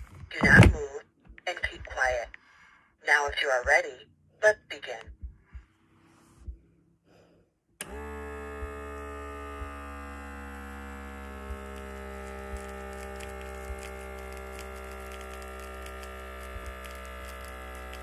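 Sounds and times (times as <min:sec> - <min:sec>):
electric air pump buzzing: 0:07.8 - 0:18.0.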